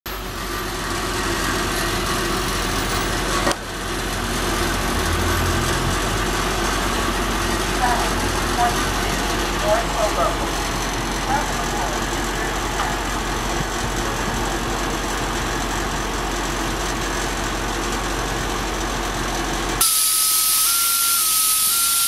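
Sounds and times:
bus diesel engine running: 0:00.0 - 0:22.0
voices: 0:07.0 - 0:14.7.

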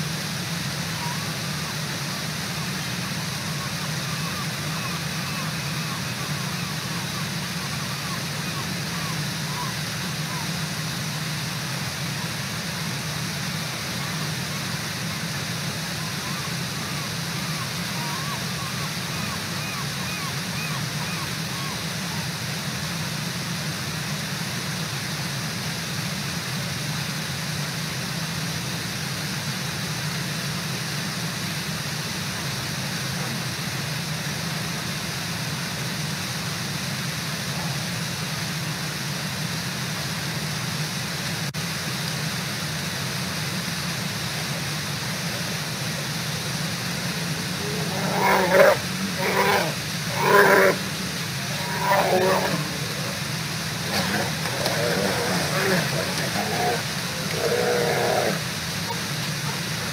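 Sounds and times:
waterfall rushing: 0:00.0 - 0:27.5, 0:30.0 - 0:59.9.

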